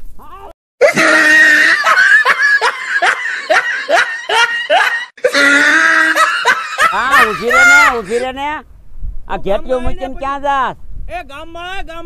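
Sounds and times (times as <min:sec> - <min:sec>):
man laughing loudly: 0:00.8 - 0:08.2.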